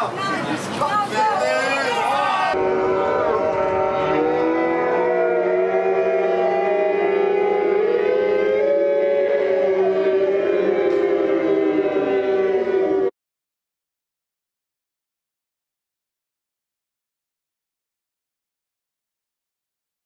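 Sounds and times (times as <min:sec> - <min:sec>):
warning sirens wailing: 0:01.4 - 0:13.1.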